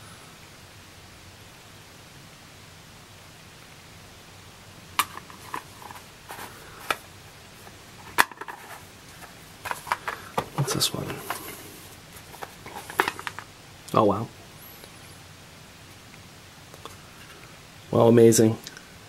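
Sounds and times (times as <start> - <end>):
faint room hiss: 0.0 - 19.0.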